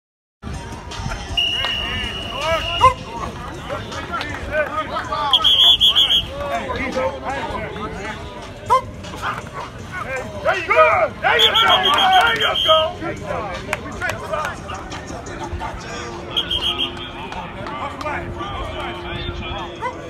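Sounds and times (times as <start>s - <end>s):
people shouting: 1.2s - 13.2s, 14.1s - 20.0s.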